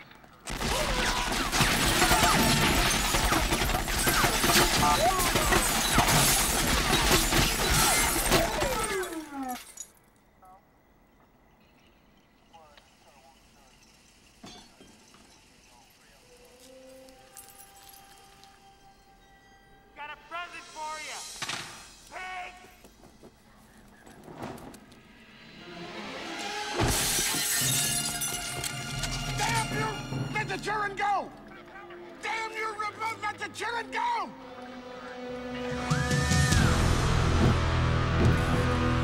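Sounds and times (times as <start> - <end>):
glass shattering: 0.5 - 10.0, 13.6 - 16.1, 26.8 - 29.7
faint music: 9.8 - 24.4, 28.5 - 36.9.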